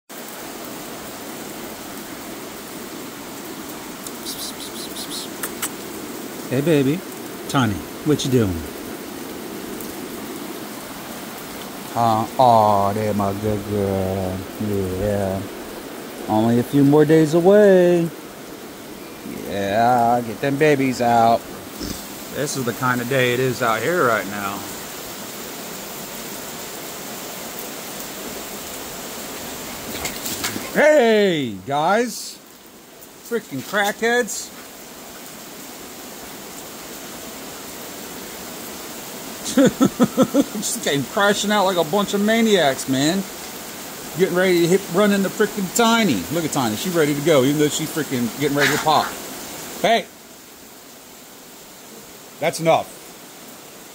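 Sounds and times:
steady rain falling: 0.1s - 53.9s.

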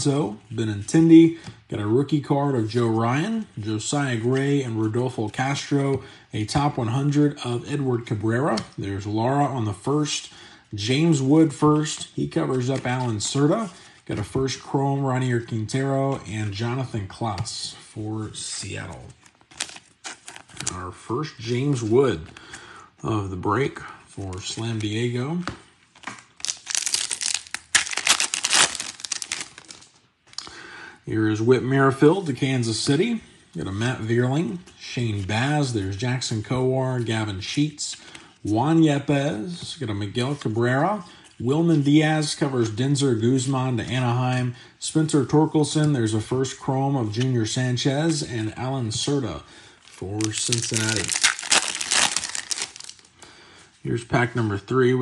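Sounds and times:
man talking: 0.0s - 19.2s, 20.6s - 25.6s, 31.0s - 52.8s, 53.8s - 55.0s
foil wrapper tearing and crinkling: 19.5s - 20.8s, 26.4s - 29.9s, 50.2s - 53.1s.

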